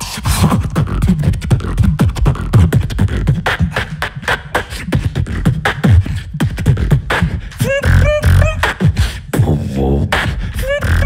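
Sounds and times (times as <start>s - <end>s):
person beatboxing: 0.0s - 11.0s.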